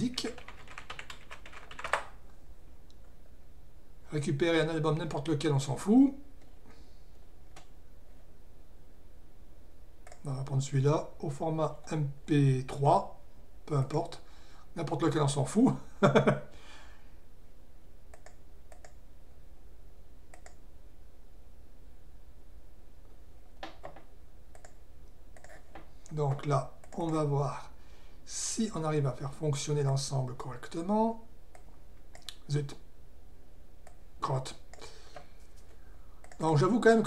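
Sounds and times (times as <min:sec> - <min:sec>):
faint low hum: 0:00.0 - 0:37.0
computer keyboard typing: 0:00.2 - 0:02.2, 0:18.2 - 0:19.0, 0:23.6 - 0:24.8, 0:25.4 - 0:25.6.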